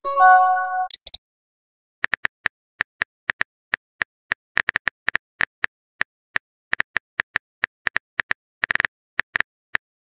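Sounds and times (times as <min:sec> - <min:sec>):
phone keyboard typing clicks: 0:00.8 - 0:01.2.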